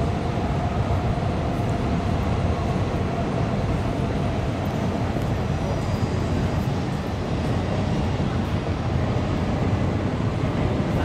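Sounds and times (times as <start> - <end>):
city traffic rumble: 0.0 - 11.0.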